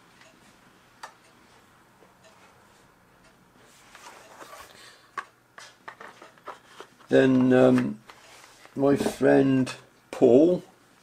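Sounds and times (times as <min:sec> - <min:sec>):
faint regular ticking: 0:00.2 - 0:02.4, 0:03.2 - 0:03.5.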